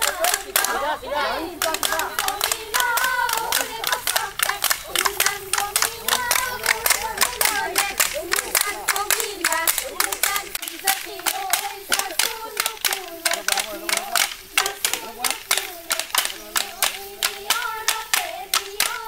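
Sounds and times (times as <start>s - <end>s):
women clapping fast: 0.0s - 19.0s
women singing: 0.0s - 19.0s.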